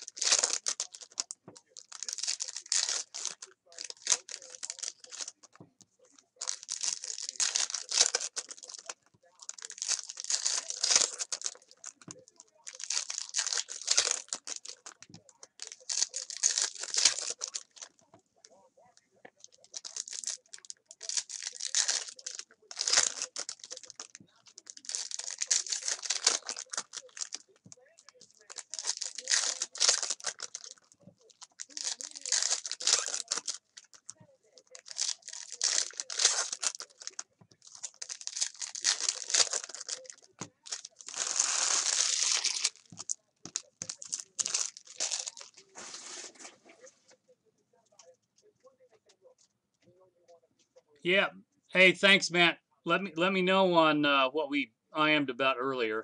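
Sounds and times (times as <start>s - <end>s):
foil wrappers tearing and crinkling: 0.0s - 5.6s, 6.4s - 17.9s, 19.4s - 46.6s.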